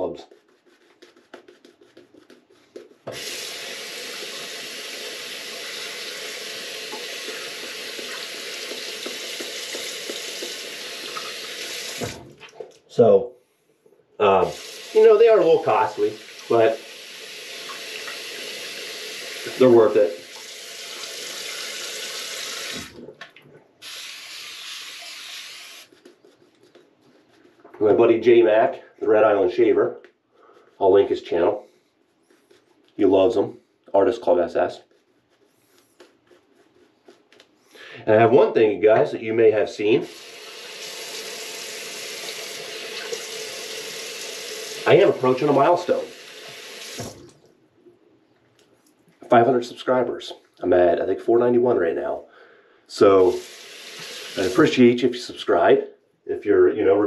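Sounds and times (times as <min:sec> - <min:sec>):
tap running water: 0:02.8 - 0:12.8, 0:14.5 - 0:26.1, 0:40.0 - 0:47.5, 0:53.2 - 0:54.8
tap running into sink: 0:06.8 - 0:12.5, 0:46.5 - 0:47.4.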